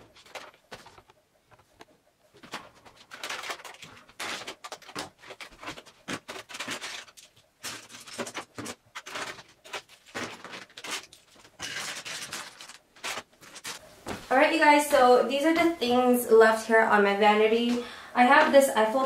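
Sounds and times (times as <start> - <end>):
plastic containers rustling and clicking: 0.0 - 14.2.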